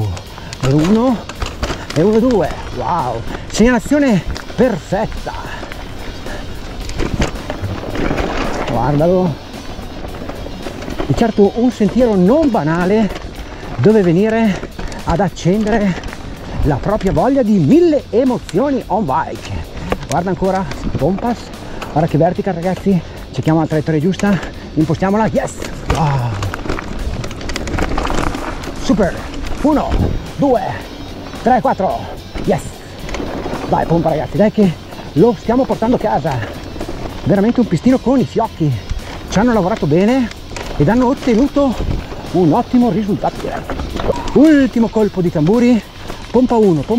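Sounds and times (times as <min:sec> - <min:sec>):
background music: 0:00.0 - 0:46.9
bike tyres rolling on rough trail: 0:00.0 - 0:46.9.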